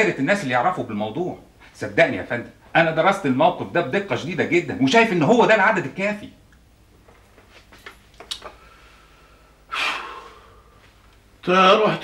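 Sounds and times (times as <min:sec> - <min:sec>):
man's sharp breathy breath: 0:08.6 - 0:10.9.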